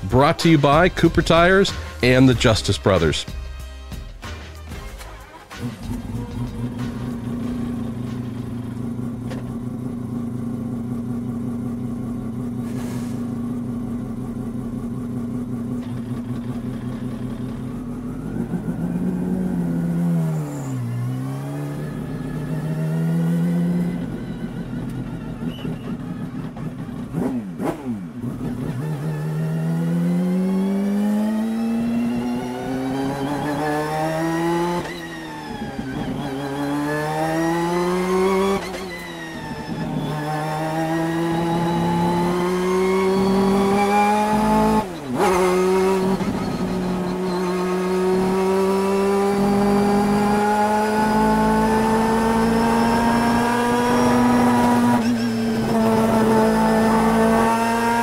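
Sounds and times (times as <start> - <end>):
rotary race car engine revving: 5.2 - 58.0.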